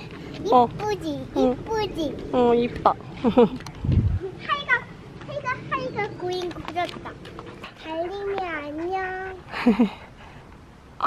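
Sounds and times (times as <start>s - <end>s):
brief low rumble: 3.8s - 4.2s.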